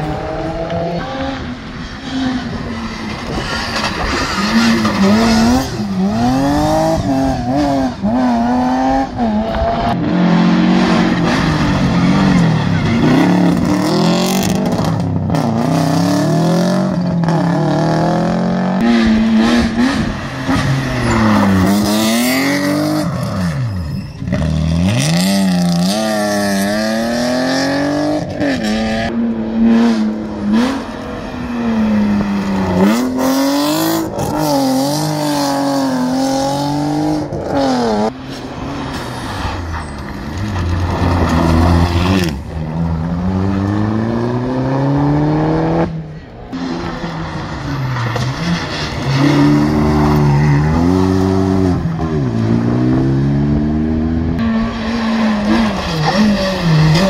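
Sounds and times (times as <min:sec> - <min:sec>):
car accelerating at full throttle: 0:00.0 - 0:39.6, 0:40.3 - 0:57.0
rally car engines revving: 0:00.0 - 0:57.0.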